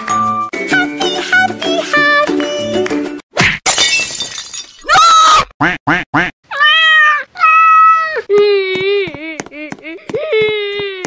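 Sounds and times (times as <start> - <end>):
cat crying and meowing: 6.5 - 8.3.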